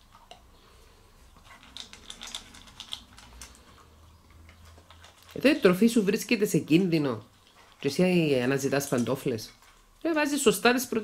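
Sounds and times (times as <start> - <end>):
puppy crunching kibble in metal bowl: 1.3 - 10.8.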